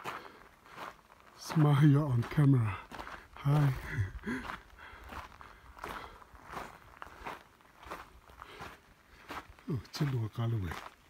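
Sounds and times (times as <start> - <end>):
footsteps on gravel path: 0.0 - 11.0.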